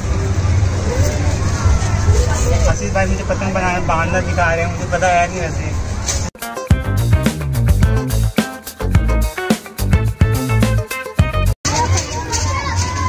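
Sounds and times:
steady low rumble: 6.7 - 10.6.

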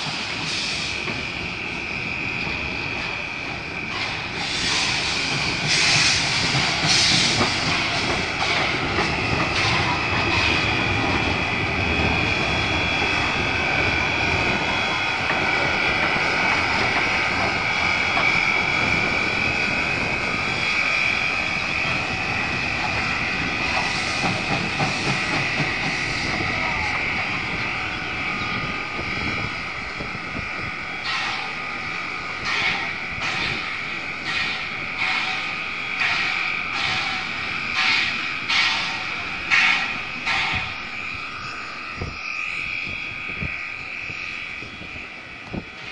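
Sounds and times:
steam locomotive hissing: 0.0 - 45.9
locomotive exhaust chuffs: 3.8 - 42.2.

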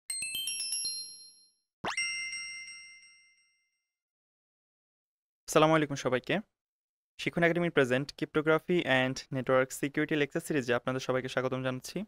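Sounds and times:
bell-like chime ding: 0.1 - 3.8.

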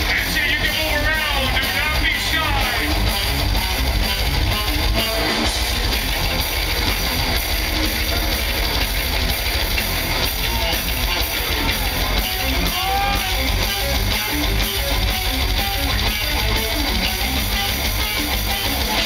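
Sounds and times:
live death metal band: 0.0 - 19.0.

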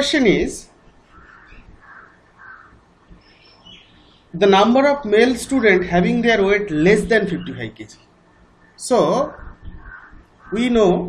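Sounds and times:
faint bird calls: 0.9 - 4.4, 5.2 - 11.0.

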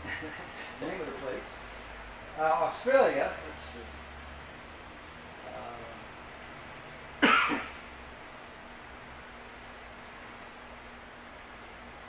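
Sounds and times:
faint steady hum: 0.0 - 12.0
sharp cough: 7.2 - 7.8.

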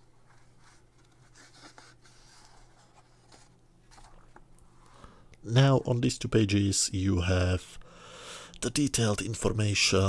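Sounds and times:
magazine page rustling: 0.0 - 4.5.

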